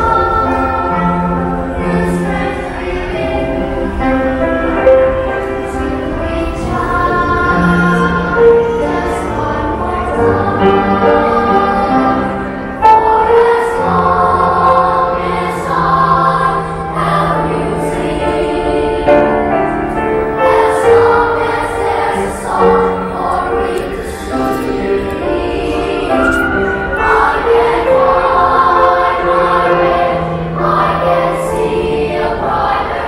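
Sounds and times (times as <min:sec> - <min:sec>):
children's choir singing: 0:00.0 - 0:33.0.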